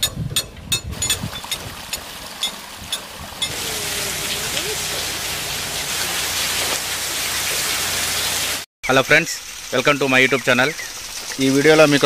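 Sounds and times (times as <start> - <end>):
water pouring and splashing: 0.9 - 12.0.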